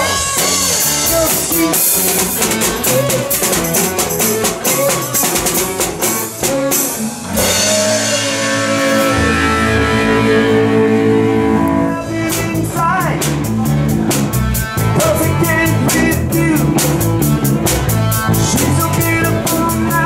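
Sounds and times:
bass guitar: 0:00.0 - 0:20.0
drum kit beating: 0:00.0 - 0:20.0
electric guitar: 0:00.0 - 0:20.0.

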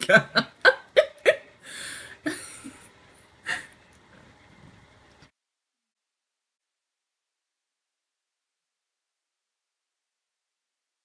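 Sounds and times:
woman laughing: 0:00.0 - 0:01.5, 0:02.2 - 0:02.9
breathy gasps: 0:01.6 - 0:02.2.

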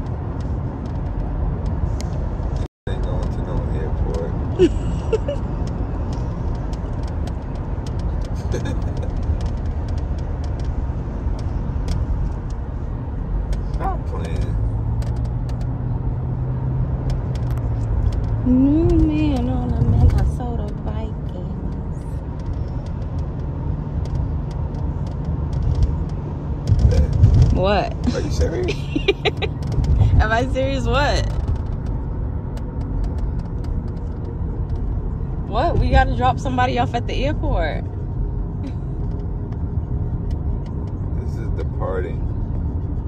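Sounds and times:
car engine and tyre rumble: 0:00.0 - 0:43.0.

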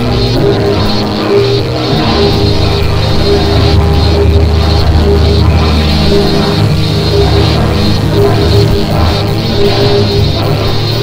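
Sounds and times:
instrumental synthesizer music: 0:00.0 - 0:11.0.

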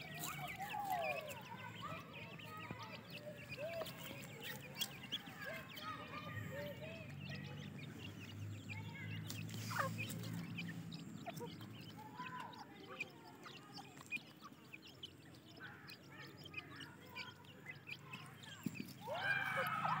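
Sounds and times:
chicks peeping: 0:00.0 - 0:20.0.

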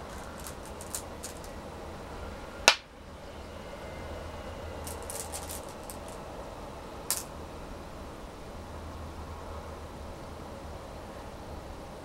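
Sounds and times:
stones clinking in bowl: 0:00.0 - 0:01.6, 0:04.9 - 0:06.2
low steady hum: 0:00.0 - 0:12.0.

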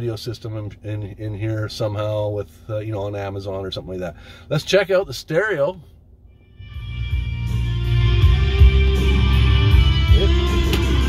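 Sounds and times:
music from car stereo: 0:06.5 - 0:11.0.

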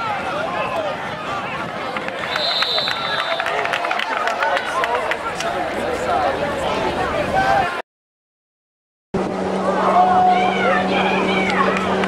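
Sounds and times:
crowd voices: 0:00.0 - 0:07.8, 0:09.2 - 0:12.0
referee's whistle: 0:02.2 - 0:03.6.

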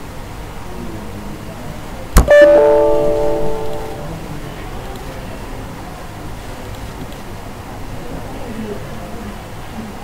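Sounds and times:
computer error chime: 0:02.2 - 0:04.2.

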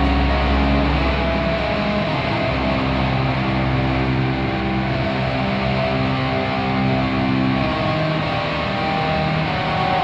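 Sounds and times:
sustained electric guitar chords: 0:00.0 - 0:10.0.

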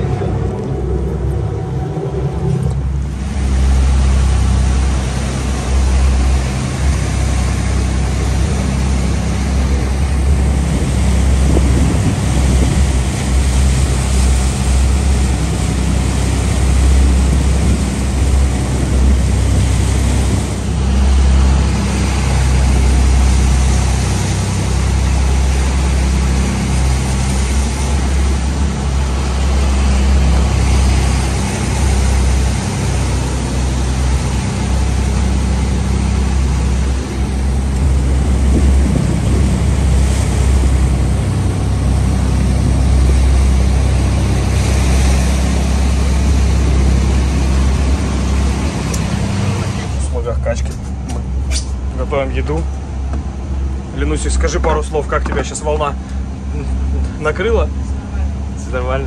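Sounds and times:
rushing sea spray: 0:00.0 - 0:50.6
strong wind: 0:00.0 - 0:58.8
low engine drone: 0:00.0 - 0:59.0.

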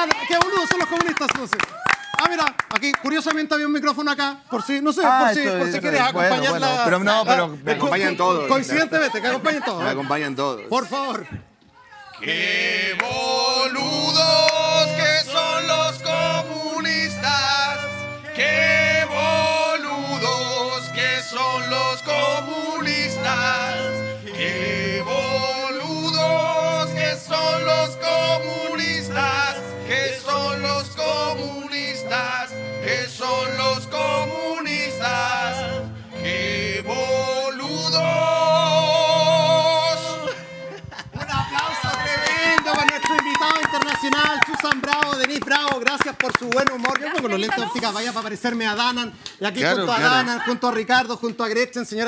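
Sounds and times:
hand clapping: 0:00.0 - 0:03.5, 0:14.4 - 0:14.6, 0:41.6 - 0:49.4
men singing along: 0:12.2 - 0:40.4
violin playing: 0:12.3 - 0:44.3.

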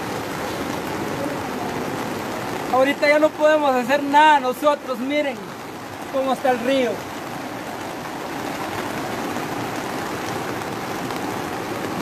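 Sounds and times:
falling rain: 0:00.0 - 0:12.0
floodwater rushing: 0:00.0 - 0:12.0.

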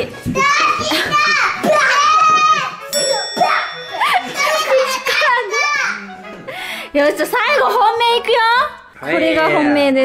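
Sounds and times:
children laughing and squealing: 0:00.4 - 0:06.2.

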